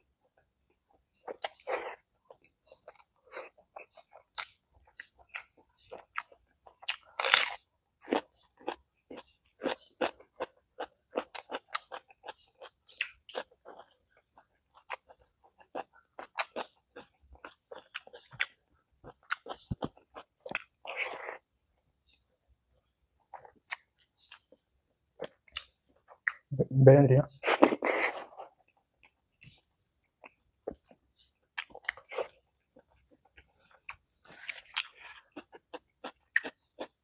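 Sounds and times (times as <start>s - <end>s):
crunchy chewing: 0.9s - 21.5s, 22.1s - 26.5s, 27.4s - 37.0s.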